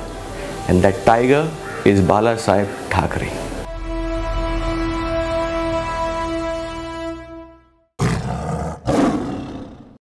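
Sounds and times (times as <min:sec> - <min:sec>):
tiger roar: 0:08.0 - 0:10.0.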